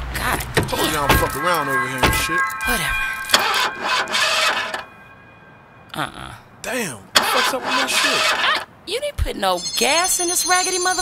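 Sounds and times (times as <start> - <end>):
car starter cranking engine: 3.3 - 4.9, 7.2 - 8.7.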